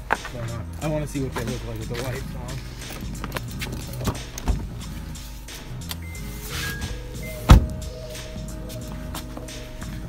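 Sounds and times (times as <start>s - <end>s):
background music: 0.0s - 10.0s
car door thump: 4.1s - 4.7s, 6.6s - 7.9s.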